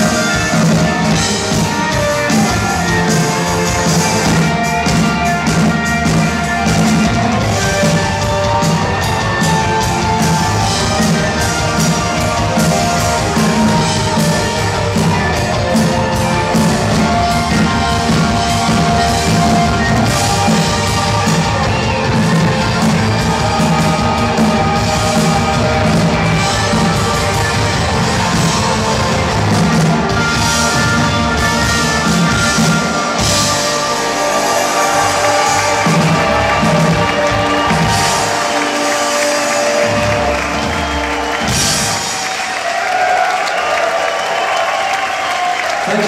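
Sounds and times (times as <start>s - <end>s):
crowd cheering and applauding: 0.0s - 46.0s
live rock band playing: 0.0s - 46.0s.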